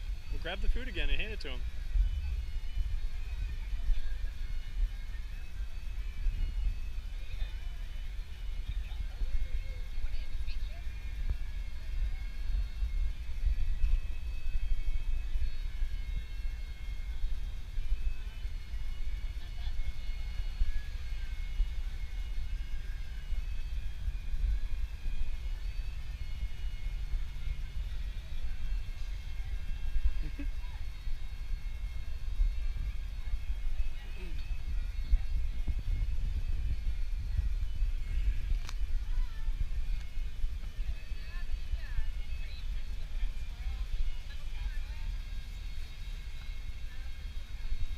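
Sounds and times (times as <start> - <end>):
faint voices: 0.0 - 47.9
low city rumble: 0.0 - 47.9.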